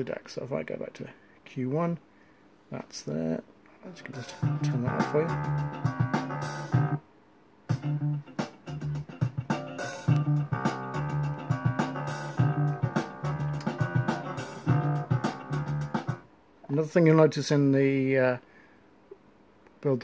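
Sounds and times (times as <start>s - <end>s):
music with guitar bass and drums: 4.1s - 7.0s, 7.7s - 16.2s.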